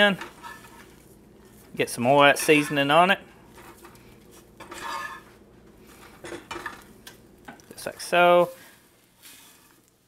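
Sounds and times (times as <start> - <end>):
metal fork scraping a frying pan: 0.2 - 1.0, 2.3 - 3.0, 4.6 - 5.4, 9.2 - 9.8.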